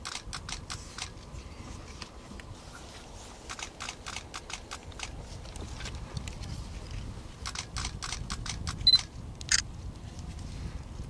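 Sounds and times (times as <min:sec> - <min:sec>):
camera shutters clicking: 0:00.0 - 0:01.2, 0:03.5 - 0:05.2, 0:07.4 - 0:09.7.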